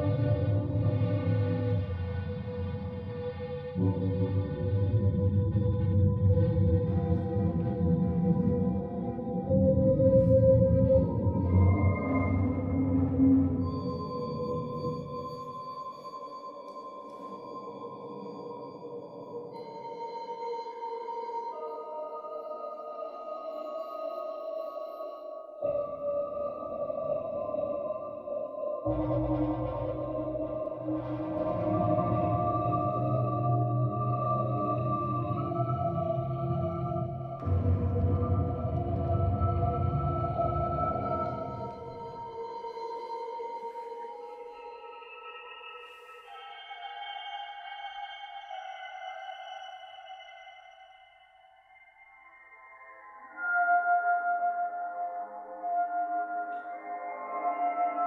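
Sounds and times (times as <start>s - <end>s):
low noisy layer: 0.0s - 15.6s, 25.6s - 50.1s.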